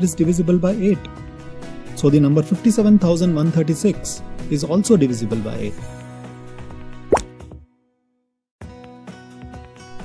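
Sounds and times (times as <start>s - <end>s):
background music: 0.0s - 7.9s, 8.6s - 10.0s
rising pop sound effect: 7.1s - 7.3s.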